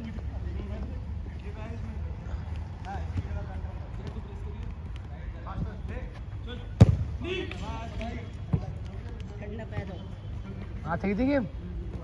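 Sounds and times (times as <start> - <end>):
players' voices: 0.0 - 12.0
football kick thud: 6.8 - 7.1.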